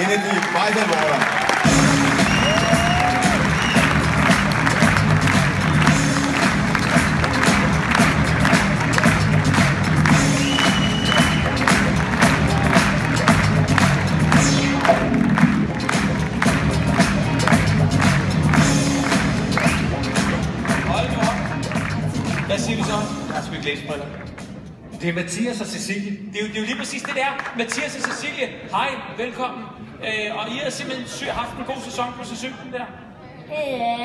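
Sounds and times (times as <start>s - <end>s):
audience applauding: 0.0s - 22.9s
loud music with bass line: 1.6s - 23.7s.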